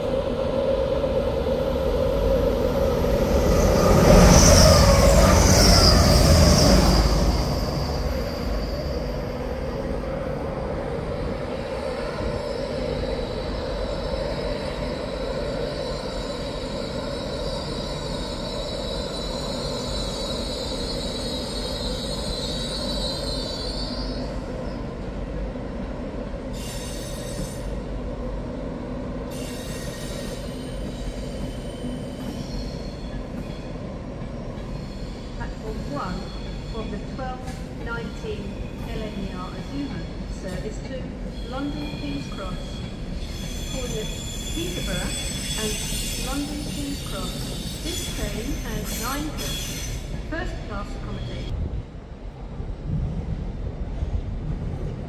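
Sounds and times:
train passing: 0.0s - 55.0s
train wheel squeal: 3.0s - 9.8s, 11.7s - 24.9s, 26.5s - 27.8s, 29.3s - 33.8s, 34.4s - 51.5s.

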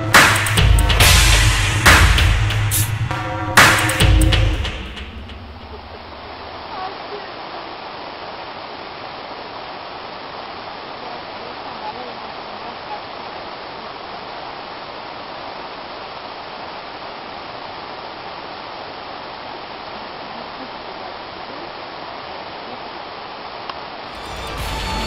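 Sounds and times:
music with a beat: 0.0s - 5.5s
steady rushing noise: 0.0s - 6.8s.

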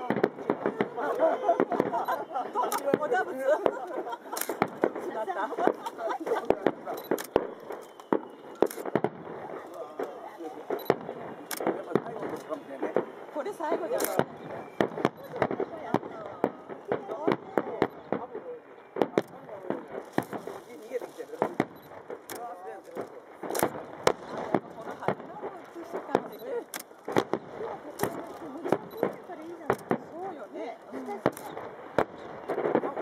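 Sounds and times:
firework shells bursting: 0.0s - 33.0s
spectators' voices: 0.0s - 33.0s.

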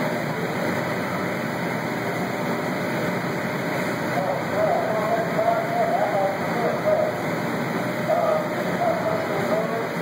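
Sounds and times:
machine drone: 0.0s - 10.0s.

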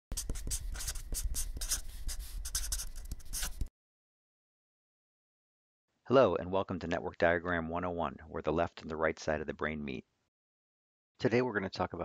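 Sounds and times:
scratchy writing strokes: 0.1s - 3.7s.

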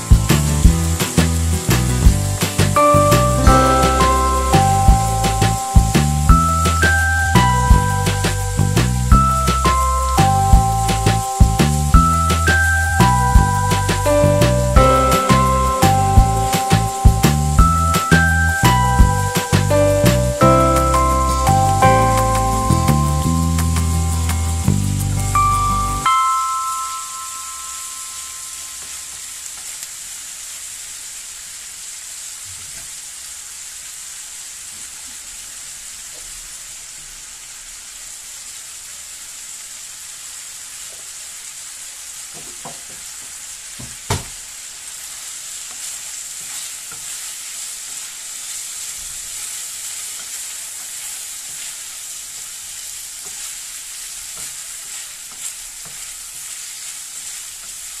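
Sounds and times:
food sizzling in a frying pan: 0.0s - 58.0s.

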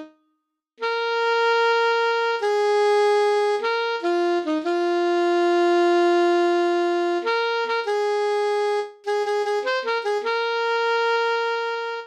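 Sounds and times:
alto saxophone long note: 0.8s - 12.0s.

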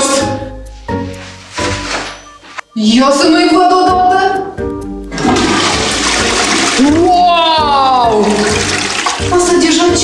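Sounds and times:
toilet flushing: 5.1s - 7.2s, 8.1s - 10.0s.

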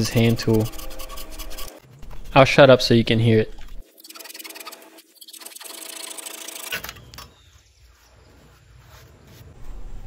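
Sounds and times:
pull saw cutting through board: 3.9s - 6.8s.

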